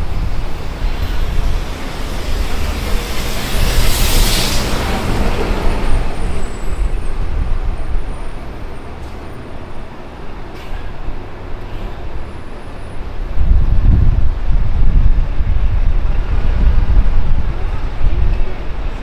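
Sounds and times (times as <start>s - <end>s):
loud hiss: 0.0s - 6.8s
road traffic passing: 0.0s - 19.0s.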